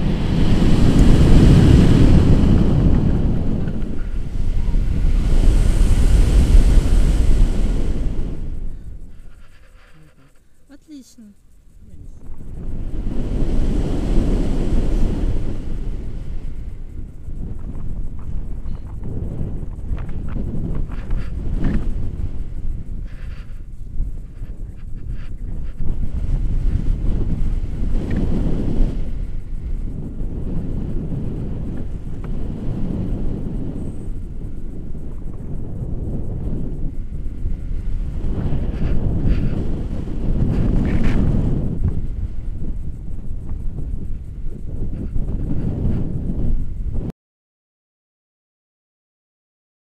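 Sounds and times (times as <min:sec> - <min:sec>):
wind buffeting microphone: 0:00.0 - 0:47.1.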